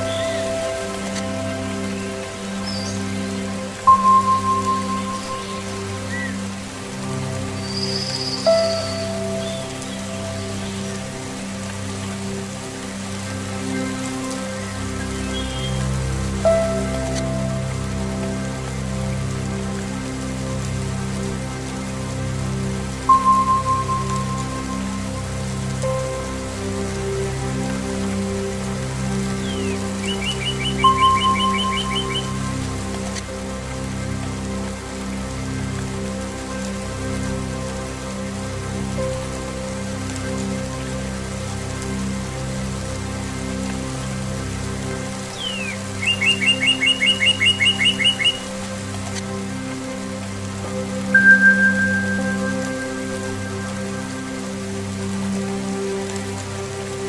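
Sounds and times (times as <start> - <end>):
steady rain: 0.0 - 57.0
songbird trilling: 29.4 - 32.4, 45.4 - 48.4
sustained low strings: 50.8 - 57.0
bell-like tone: 51.2 - 53.7.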